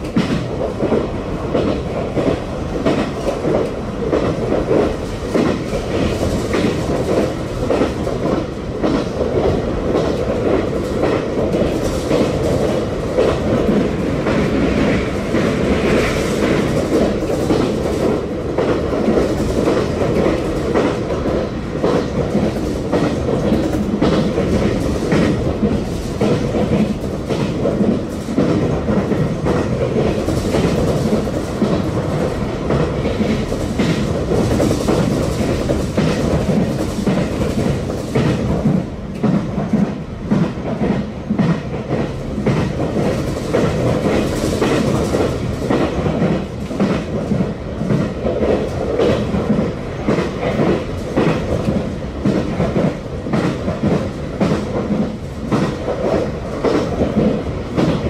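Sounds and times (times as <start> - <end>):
clickety-clack of rail joints: 0.0 - 58.0
train wheels rumbling on track: 0.0 - 58.0.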